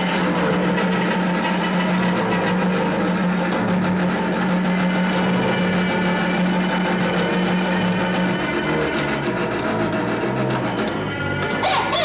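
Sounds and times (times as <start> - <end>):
noise music on amplified instruments: 0.0 - 12.0
steady low drone: 0.0 - 12.0.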